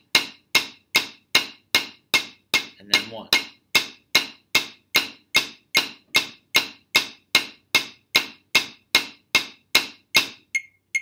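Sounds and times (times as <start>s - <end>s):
drumsticks striking practice pad: 0.0s - 10.6s
metronome clicking: 10.2s - 11.0s.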